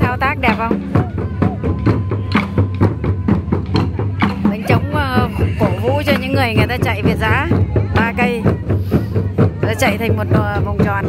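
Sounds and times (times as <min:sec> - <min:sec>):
taiko drums: 0:00.0 - 0:11.0.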